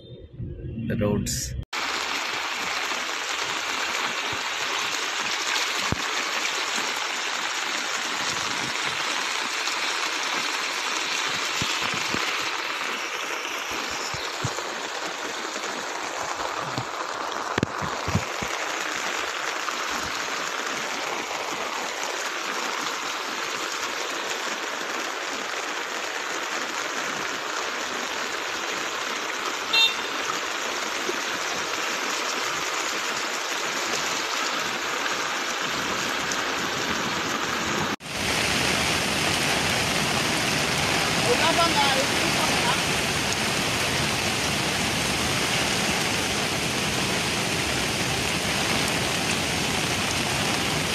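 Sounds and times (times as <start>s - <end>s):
heavy rain hissing: 1.1s - 50.9s
floodwater running across road: 1.8s - 50.9s.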